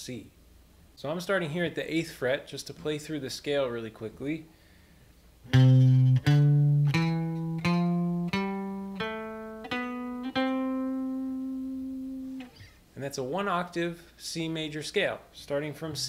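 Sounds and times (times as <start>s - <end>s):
electric guitar picking a scale: 5.5s - 12.7s.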